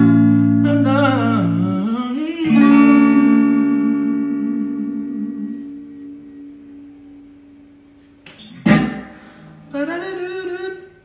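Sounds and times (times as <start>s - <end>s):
electric guitar chord ringing: 2.5s - 9.7s.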